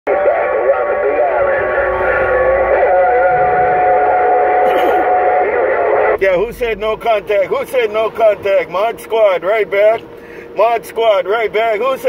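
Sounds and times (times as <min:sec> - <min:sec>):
radio whistling tones: 0:00.1 - 0:07.0
warbling radio tones: 0:00.1 - 0:09.0.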